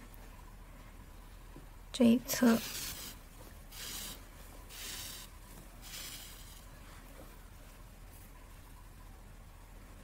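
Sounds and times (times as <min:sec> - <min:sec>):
yarn rubbing through loops: 0:02.2 - 0:06.8.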